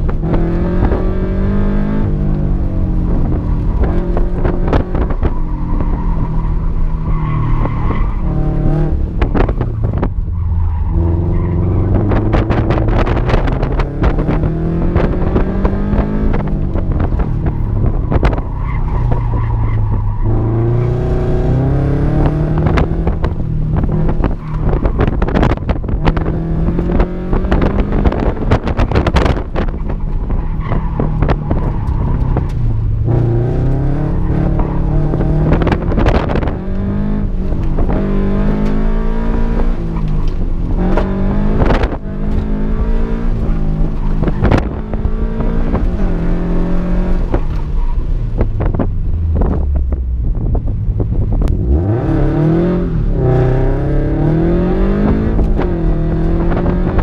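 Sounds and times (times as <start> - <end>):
car engine revving: 0.0 - 57.0
tires squealing: 2.0 - 49.6.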